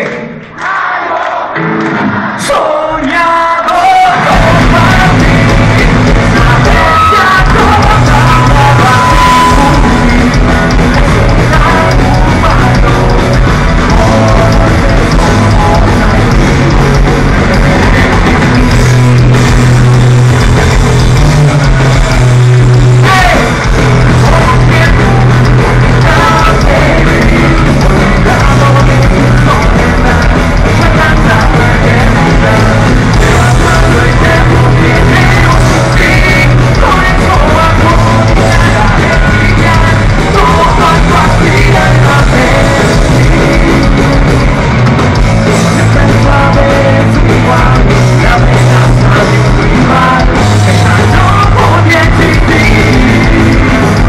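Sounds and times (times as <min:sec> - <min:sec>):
drums: 0:00.0 - 0:54.0
distorted electric guitars: 0:01.5 - 0:54.0
bass guitar: 0:01.6 - 0:54.0
person singing lead vocal: 0:01.9 - 0:54.0.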